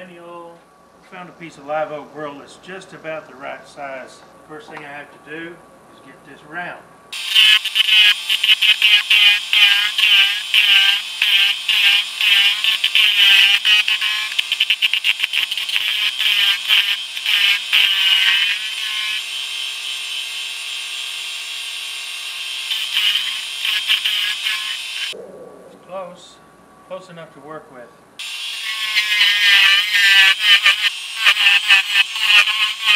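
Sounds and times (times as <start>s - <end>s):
wood lathe turning: 15.1s - 25.1s, 28.2s - 32.9s.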